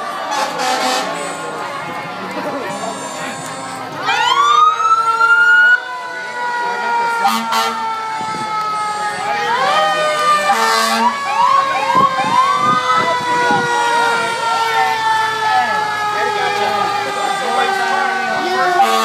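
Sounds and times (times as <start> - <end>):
siren whoop rising: 4.0 - 18.9
long falling siren tone: 4.0 - 19.0.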